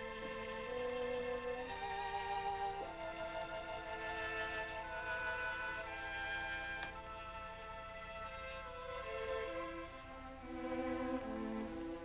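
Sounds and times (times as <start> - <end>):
orchestral film score: 0.0 - 12.0.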